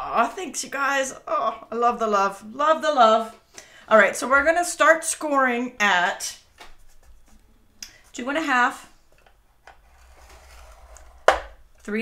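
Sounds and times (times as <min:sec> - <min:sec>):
stylus scraping cardstock: 0:09.8 - 0:11.2.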